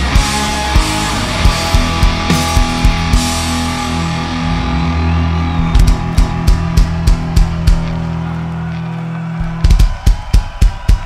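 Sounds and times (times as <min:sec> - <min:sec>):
drum kit hits: 0:00.0 - 0:04.1, 0:05.6 - 0:08.1, 0:09.4 - 0:11.0
electric guitar and bass chord: 0:00.0 - 0:08.4.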